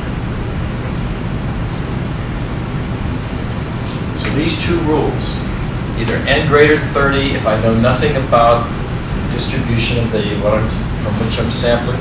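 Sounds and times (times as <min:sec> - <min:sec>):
low rumble with hiss: 0:00.0 - 0:12.0.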